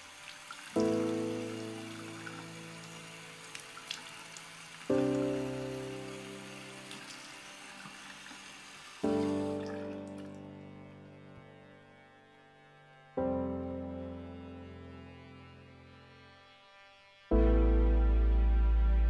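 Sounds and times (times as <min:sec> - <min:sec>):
sustained piano chords: 0:00.6 - 0:08.3, 0:09.0 - 0:19.0
tap running into sink: 0:06.7 - 0:10.3.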